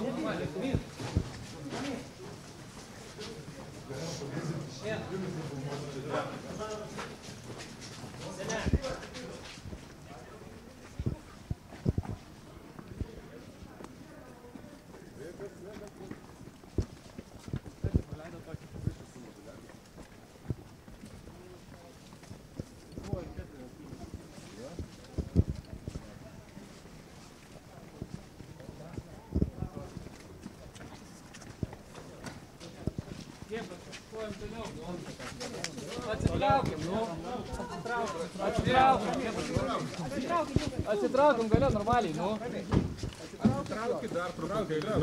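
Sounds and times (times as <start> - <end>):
faint voices: 0.0 - 45.0
footsteps on brick paving: 0.0 - 45.0.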